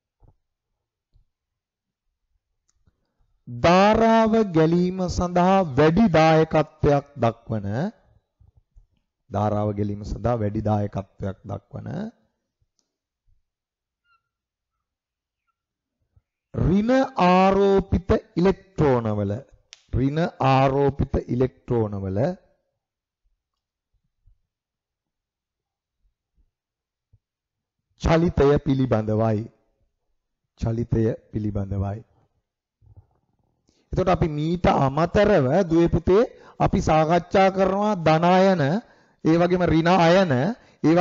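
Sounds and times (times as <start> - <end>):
man speaking: 3.5 - 8.0, 9.3 - 12.2, 16.6 - 22.4, 28.0 - 29.6, 30.6 - 32.1, 34.0 - 41.0
marker squeaking on whiteboard: 14.0 - 16.5.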